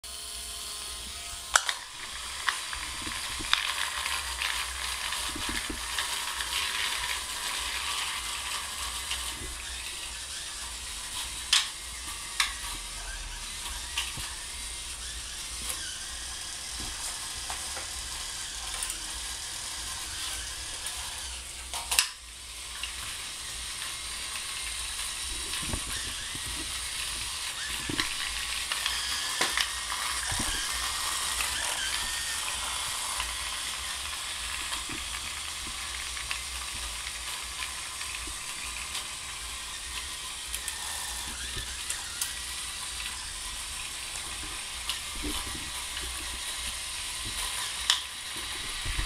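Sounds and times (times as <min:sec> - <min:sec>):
small gearmotors whirring: 0:00.1 - 0:49.0.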